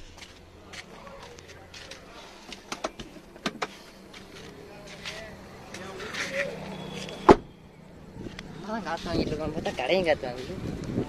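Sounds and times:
car door slamming: 6.9 - 7.6.

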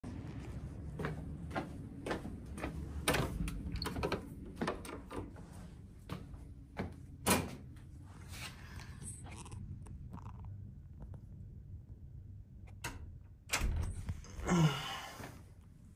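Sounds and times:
low steady rumble: 0.0 - 4.6, 5.3 - 15.9
footsteps in tiled room: 0.0 - 8.8.

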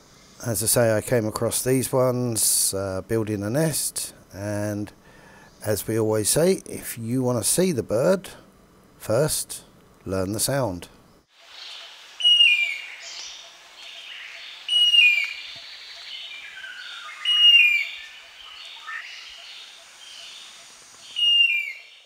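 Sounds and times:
soft calls of other birds: 11.5 - 22.0.

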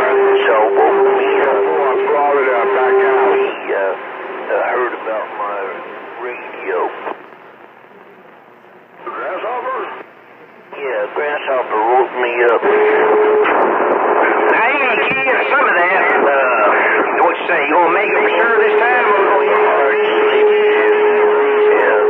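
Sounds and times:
radio whistle tone: 0.0 - 7.2, 10.7 - 22.0
garbled radio voices: 0.0 - 22.0
radio static hiss: 0.0 - 22.0.

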